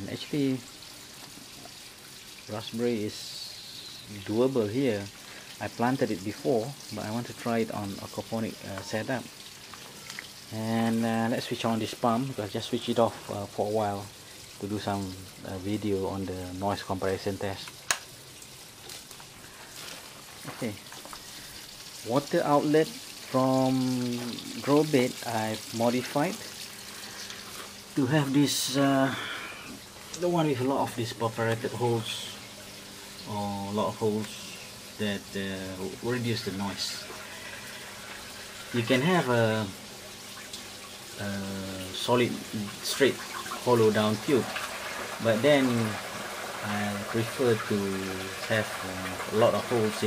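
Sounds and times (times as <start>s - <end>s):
water running and splashing: 0.0s - 50.0s.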